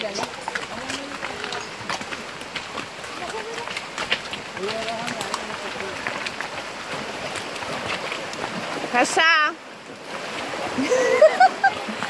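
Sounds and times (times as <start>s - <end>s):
horses splashing in water: 0.0s - 12.0s
river rushing over stones: 0.0s - 12.0s.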